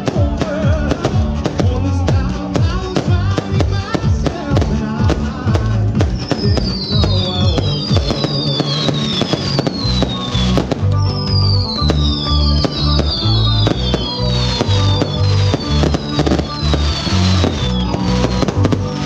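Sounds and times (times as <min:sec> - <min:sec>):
fireworks bangs and crackles: 0:00.0 - 0:19.0
loud music with bass beat: 0:00.0 - 0:19.0
falling firework whistles: 0:06.0 - 0:19.0.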